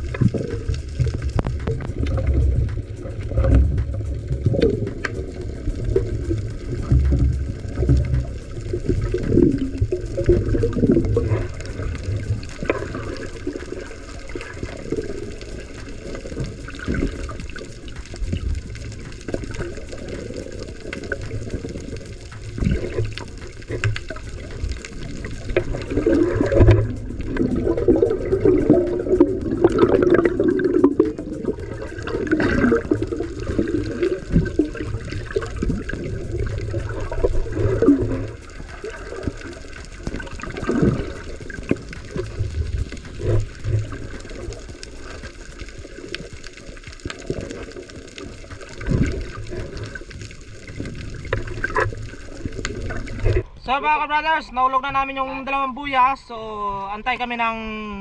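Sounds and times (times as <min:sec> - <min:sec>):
muffled underwater water rushing: 0:00.0 - 0:58.0.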